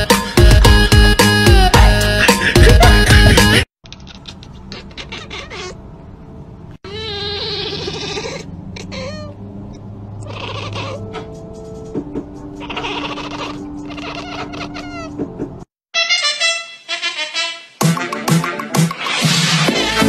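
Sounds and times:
cat meowing and chirping: 0:04.0 - 0:05.8, 0:06.9 - 0:09.4, 0:10.2 - 0:11.3, 0:12.6 - 0:15.2.

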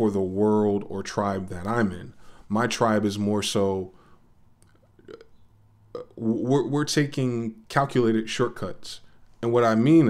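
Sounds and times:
man speaking: 0:00.0 - 0:04.0, 0:06.0 - 0:10.0
soft low throat sound: 0:04.7 - 0:06.3.

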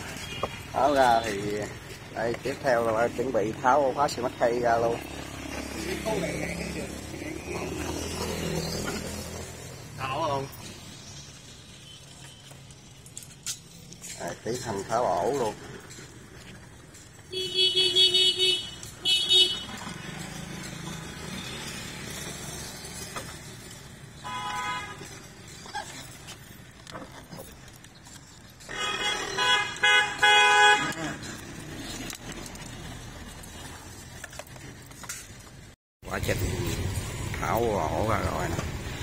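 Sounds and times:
vehicle horns honking: 0:17.3 - 0:20.0, 0:24.2 - 0:25.2, 0:28.7 - 0:31.4
low street hum: 0:29.6 - 0:39.0.

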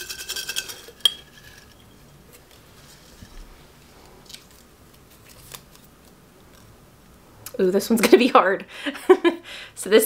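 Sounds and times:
paper slip being unfolded: 0:02.3 - 0:06.7.

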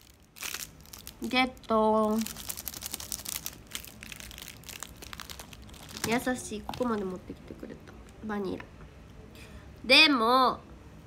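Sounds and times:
plastic wrapper crinkling: 0:00.0 - 0:07.4.

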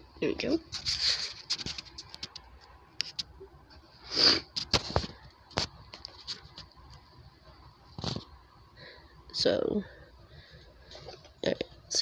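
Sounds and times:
ornaments clicking and rustling: 0:00.7 - 0:03.4.

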